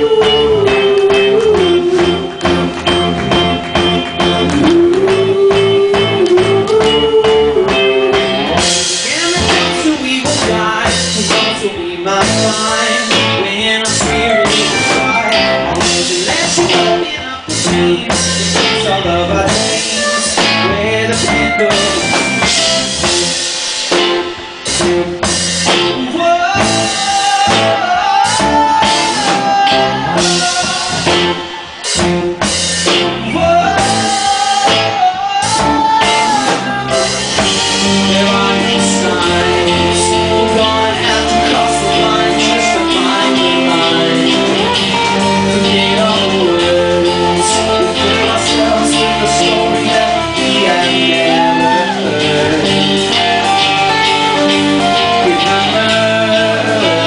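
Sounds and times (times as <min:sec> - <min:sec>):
drums and cymbals: 0:00.0 - 0:57.0
electric guitars: 0:00.0 - 0:57.0
held sliding melody line: 0:00.0 - 0:57.0
rock band playing live: 0:00.0 - 0:57.0.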